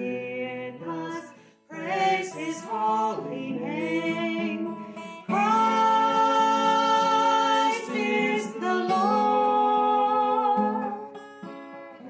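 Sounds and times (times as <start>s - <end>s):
man and woman singing: 0.0s - 11.2s
acoustic guitar: 0.0s - 12.0s.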